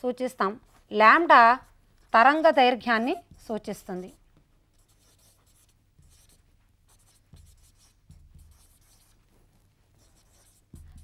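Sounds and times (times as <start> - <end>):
marker pen scratching on board: 0.6 - 11.0.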